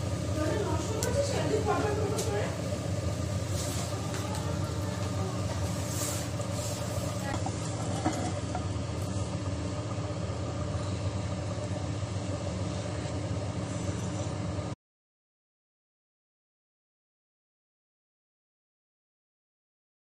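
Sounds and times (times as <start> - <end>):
low machine hum: 0.0 - 14.8.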